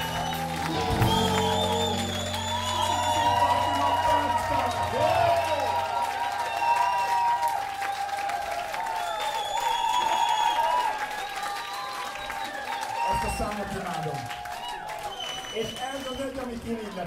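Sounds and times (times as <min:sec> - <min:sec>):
rock band low held notes: 0:00.0 - 0:06.0
audience applauding and cheering: 0:00.0 - 0:17.0.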